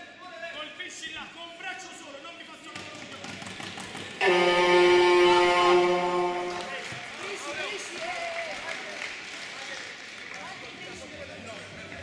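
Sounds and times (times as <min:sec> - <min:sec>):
loud steady horn note: 0:04.2 - 0:06.9.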